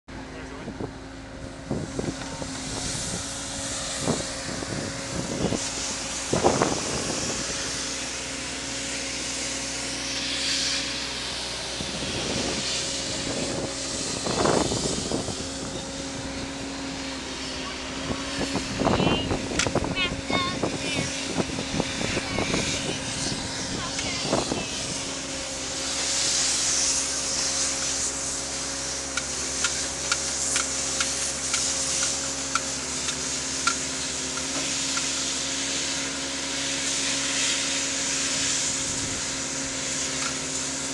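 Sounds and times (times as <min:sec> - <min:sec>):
road-work machinery engines droning: 0:00.1 - 0:40.9.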